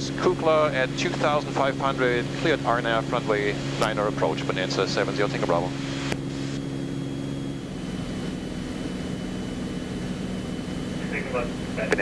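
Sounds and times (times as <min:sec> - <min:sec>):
propeller plane engine drone: 0:00.0 - 0:12.0.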